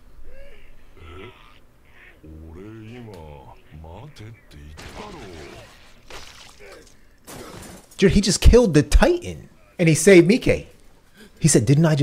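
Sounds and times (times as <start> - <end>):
faint cartoon dialogue: 2.2 - 5.8
crunching shattering impact: 4.8 - 8.1.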